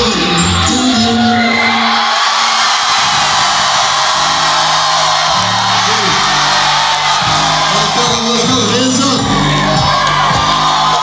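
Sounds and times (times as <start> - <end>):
crowd cheering and whooping: 0.0 - 11.0
hip-hop music over sound system: 0.0 - 11.0.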